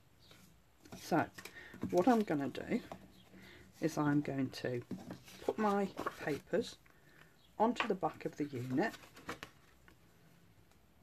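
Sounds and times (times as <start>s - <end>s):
paper rustling: 4.8s - 6.7s, 7.8s - 10.0s.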